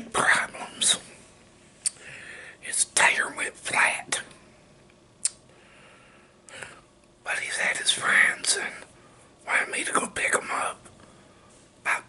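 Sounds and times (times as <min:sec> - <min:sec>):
man whispering: 0:00.0 - 0:01.1, 0:02.6 - 0:04.3, 0:07.2 - 0:10.8.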